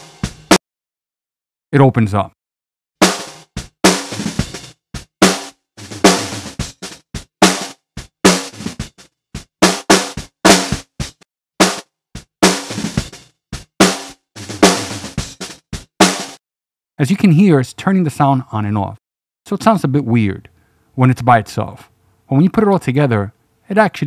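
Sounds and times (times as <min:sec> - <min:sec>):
snare drum hits: 0:03.0 - 0:16.4.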